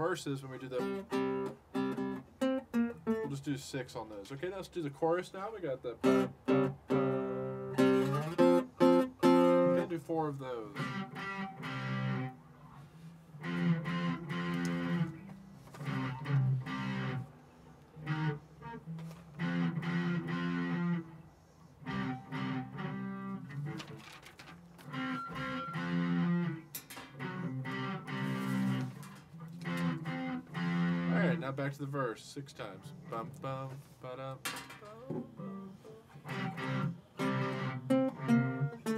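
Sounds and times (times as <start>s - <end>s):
guitars strumming chords: 0.0s - 38.9s.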